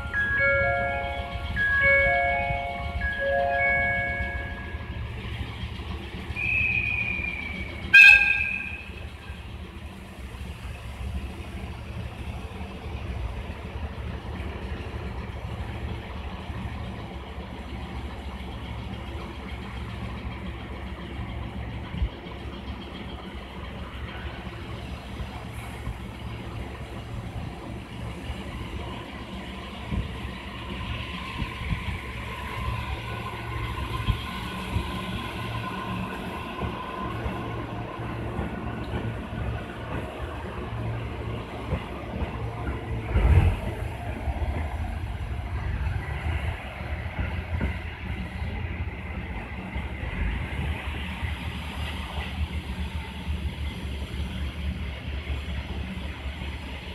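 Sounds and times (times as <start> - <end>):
train engine running: 0.0 - 56.9
train mechanical whine: 0.0 - 56.9
train horn blast: 7.8 - 9.0.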